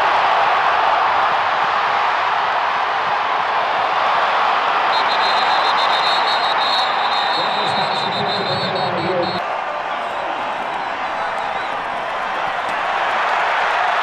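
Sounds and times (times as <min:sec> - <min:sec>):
stadium crowd cheering: 0:00.0 - 0:14.0.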